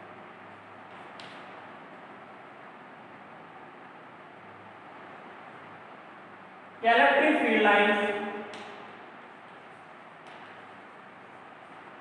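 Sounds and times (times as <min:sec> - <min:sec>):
room tone hiss and hum: 0:00.0 - 0:12.0.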